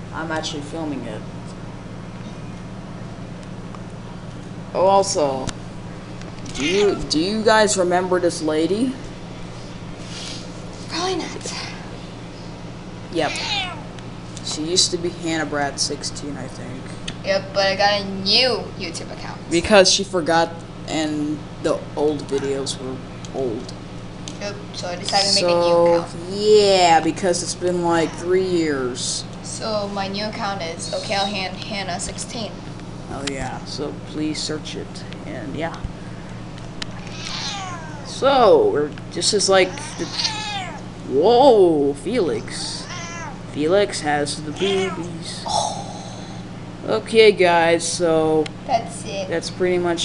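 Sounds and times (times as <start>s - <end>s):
cat meowing: 13.2s - 13.9s, 36.9s - 38.1s, 39.6s - 40.8s, 42.7s - 43.4s, 44.5s - 45.1s.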